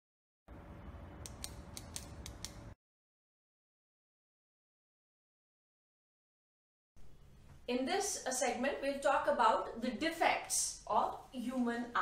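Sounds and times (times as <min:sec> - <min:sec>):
sharp crisp clicks: 0:01.2 - 0:02.8.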